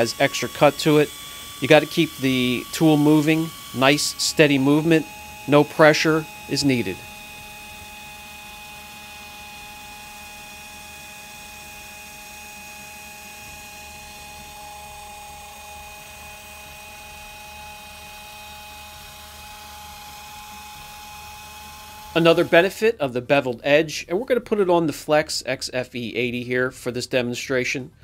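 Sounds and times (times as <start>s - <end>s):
pneumatic polisher whine: 0.0s - 22.7s.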